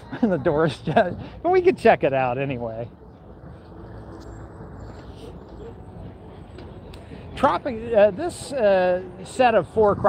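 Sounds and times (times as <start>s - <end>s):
faint voices of passers-by: 0.0s - 10.0s
road traffic hum: 0.0s - 10.0s.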